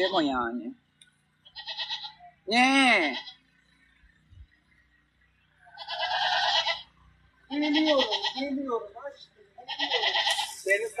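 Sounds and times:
sheep or goat bleating: 1.5s - 2.2s, 2.8s - 3.4s, 5.7s - 6.9s, 7.5s - 10.7s.

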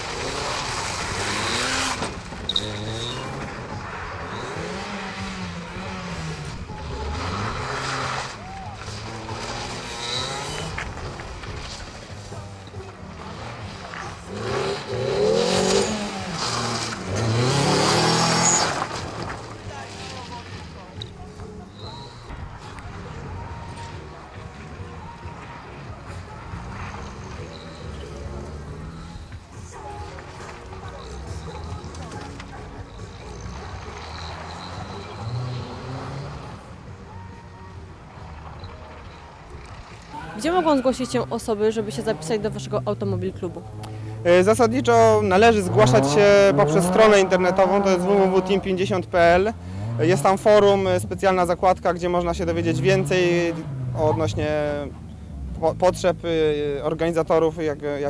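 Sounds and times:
car engine revving hard: 0.0s - 11.2s, 13.2s - 19.2s, 33.2s - 36.8s, 45.3s - 50.8s
tyre squeals: 0.3s - 10.8s, 15.0s - 22.4s, 26.4s - 29.9s, 30.8s - 37.3s.

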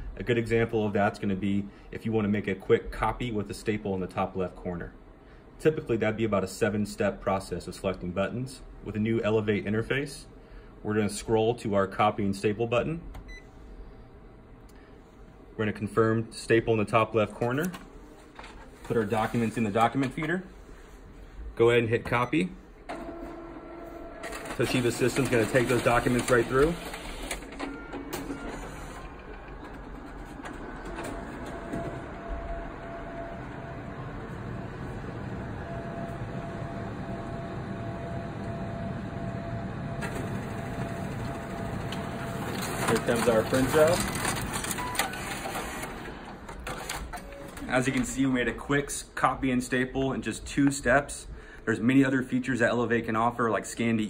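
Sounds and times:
faint machine whine: 0.0s - 49.2s
copier mechanical whirr: 17.2s - 21.0s, 22.8s - 49.2s
copier clicks: 24.1s - 48.1s
low steady hum: 27.6s - 45.1s.

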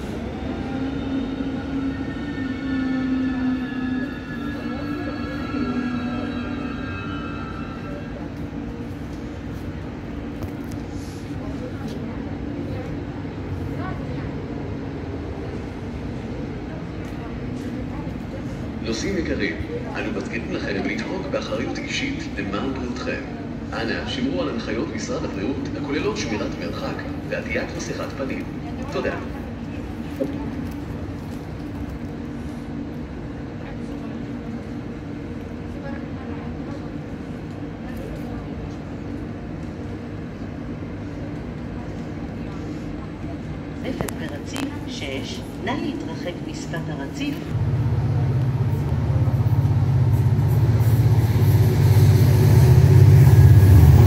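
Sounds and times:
train locomotive rumbling and humming: 0.0s - 54.0s.

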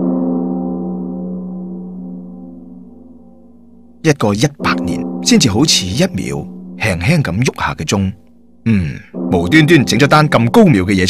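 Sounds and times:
large bell ringing: 4.1s - 11.0s.

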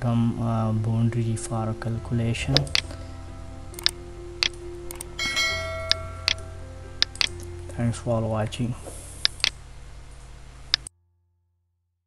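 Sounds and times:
low steady hum: 0.0s - 10.9s
sharp cursor clicks: 3.8s - 5.2s, 7.0s - 7.4s
bell-like notification chime: 4.9s - 6.7s.

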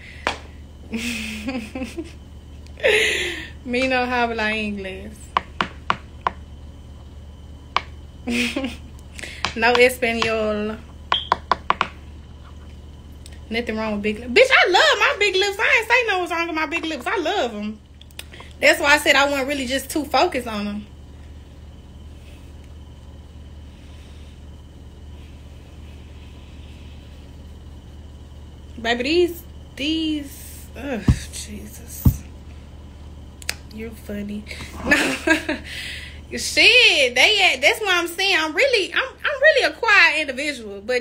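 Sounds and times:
low background hum: 0.0s - 41.0s
woman speaking: 3.6s - 5.2s, 9.6s - 10.8s, 13.5s - 17.8s, 18.6s - 20.9s, 28.8s - 32.2s, 33.6s - 35.4s, 36.3s - 41.0s.

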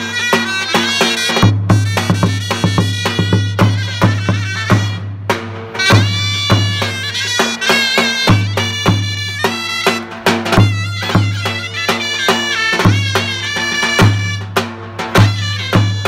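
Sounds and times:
drum pounding steady beat: 0.0s - 16.0s
reedy zurna melody: 0.0s - 16.0s.

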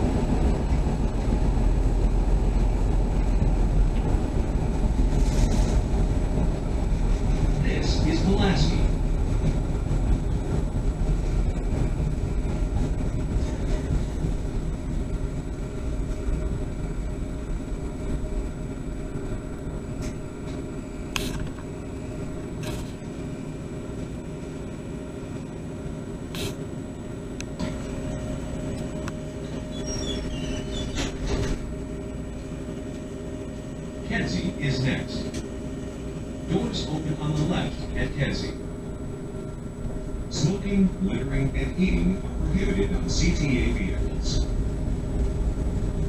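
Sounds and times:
rail car rumbling on track: 0.0s - 46.0s.

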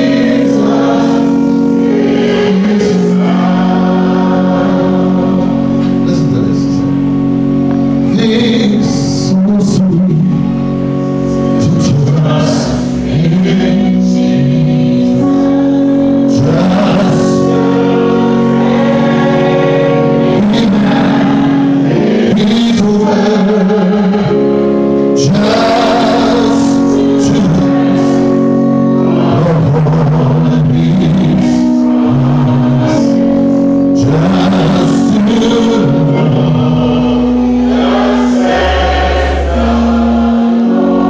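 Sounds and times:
held backing chords: 0.0s - 41.0s
man singing into a microphone: 2.4s - 6.9s, 8.0s - 10.7s, 11.4s - 18.6s, 19.6s - 24.4s, 25.0s - 38.4s.

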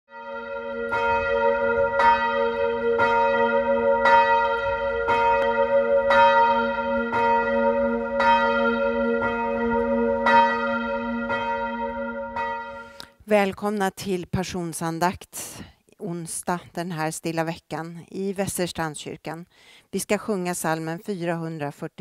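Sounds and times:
church bell tolling: 0.1s - 13.0s.

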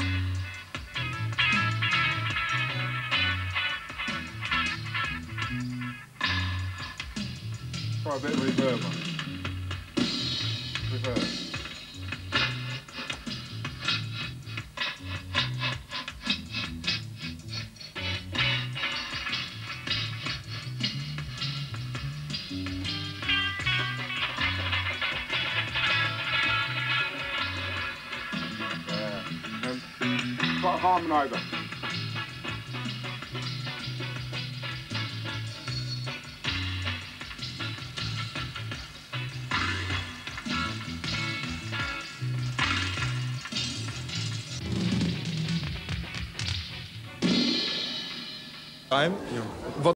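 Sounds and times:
steady bass line: 0.0s - 47.2s
reggae band playing dub: 0.0s - 49.9s.

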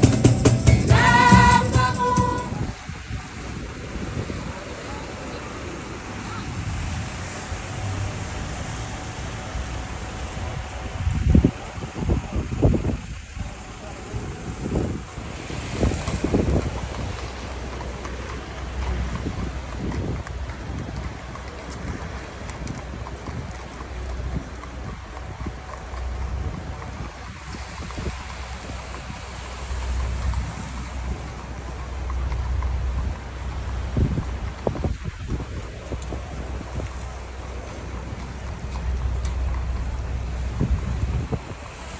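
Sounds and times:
traffic: 0.0s - 41.9s
wind buffeting microphone: 0.8s - 41.9s.

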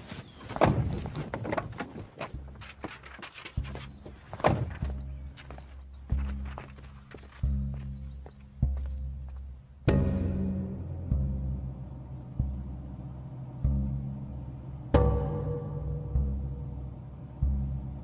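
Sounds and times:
knocks and thuds: 0.4s - 2.9s, 3.6s - 5.0s
low pulsing music note: 7.4s - 18.0s.

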